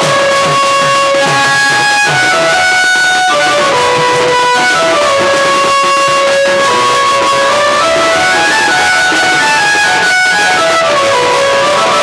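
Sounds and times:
folk melody of long held notes: 0:00.0 - 0:12.0.

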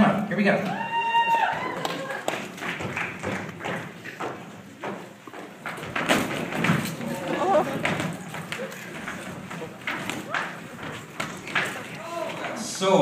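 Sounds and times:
footfalls on stage: 0:02.4 - 0:12.6
people shouting: 0:12.0 - 0:12.6.

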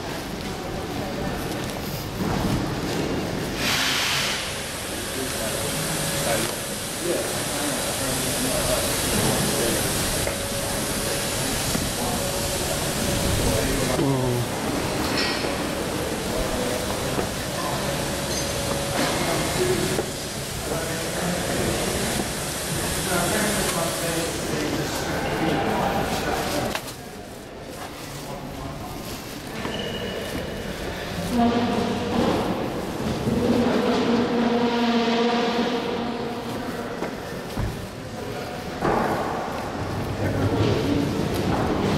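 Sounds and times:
room noise: 0:00.0 - 0:41.9
rushing hiss: 0:03.5 - 0:25.1.

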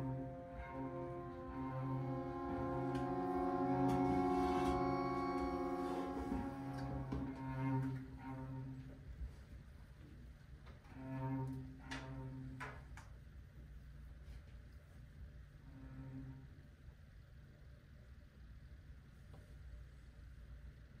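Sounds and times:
string ensemble bowed chords: 0:00.0 - 0:09.0.

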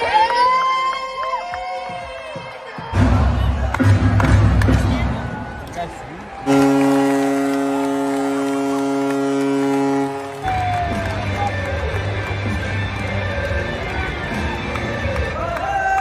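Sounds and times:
crowd cheering: 0:00.0 - 0:16.0
arena music: 0:02.8 - 0:15.8
goal horn blast: 0:06.5 - 0:11.0.

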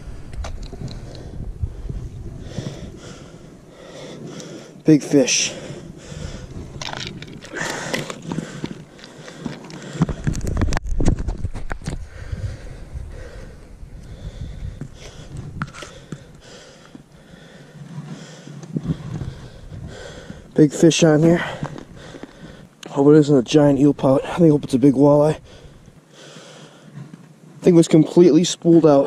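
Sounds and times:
rumbling noise against microphone: 0:00.0 - 0:04.1, 0:05.6 - 0:20.6
sniffs and breaths: 0:00.8 - 0:04.8, 0:05.4 - 0:10.7, 0:11.8 - 0:20.6, 0:21.2 - 0:22.8
scraping and crunching on snow: 0:06.5 - 0:12.0.

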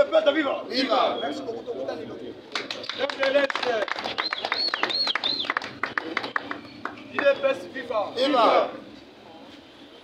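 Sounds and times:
men talking: 0:00.0 - 0:04.4, 0:05.3 - 0:09.7.

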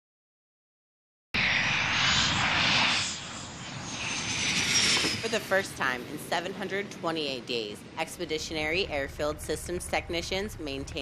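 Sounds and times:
high whine falling in pitch: 0:01.4 - 0:06.0
jet engine roar: 0:01.4 - 0:11.0.

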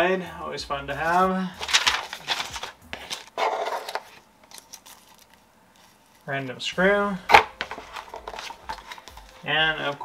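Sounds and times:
hands rustling packaging: 0:01.0 - 0:06.4, 0:07.3 - 0:10.0.

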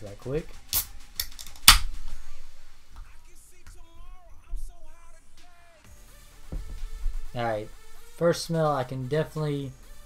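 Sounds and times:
can opening crack: 0:00.7 - 0:02.0.

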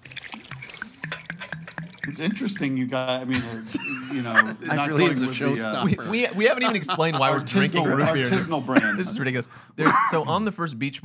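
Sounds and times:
sipping and swallowing: 0:00.0 - 0:02.7.

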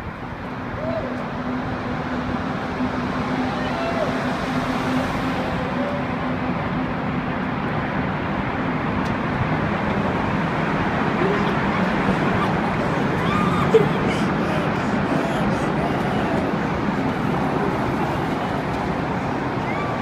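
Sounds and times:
car traffic in a tunnel: 0:00.0 - 0:20.0.

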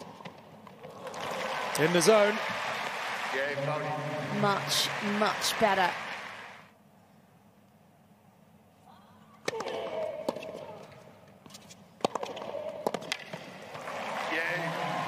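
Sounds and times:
tennis ball bouncing: 0:09.4 - 0:11.0, 0:11.6 - 0:13.9
tennis ball struck with rackets: 0:12.0 - 0:13.4.

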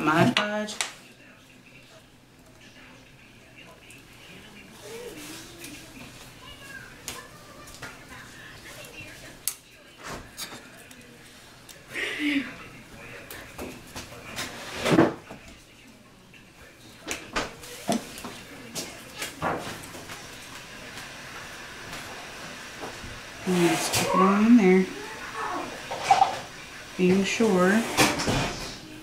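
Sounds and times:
faint voice: 0:01.0 - 0:14.6, 0:23.4 - 0:26.4.

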